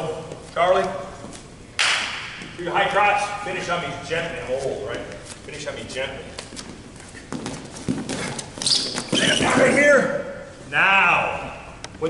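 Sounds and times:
brief squeak: 8.6s - 9.5s.

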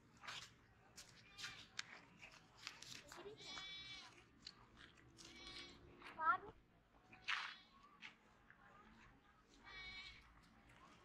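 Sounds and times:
goat bleating: 5.2s - 5.8s, 9.6s - 10.2s.

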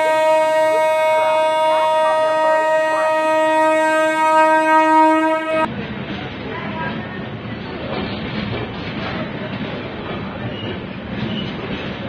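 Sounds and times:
train horn: 0.0s - 5.7s.

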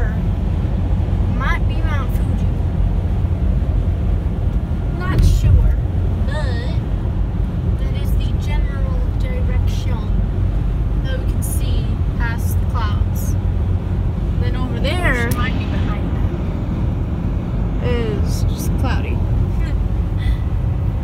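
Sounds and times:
car road and engine rumble: 0.0s - 21.0s.

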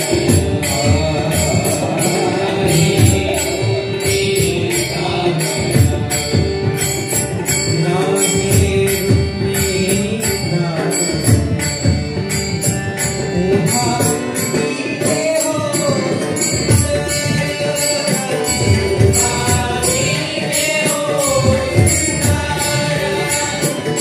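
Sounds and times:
drum beat: 0.0s - 10.4s, 11.2s - 24.0s
person singing: 0.0s - 24.0s.

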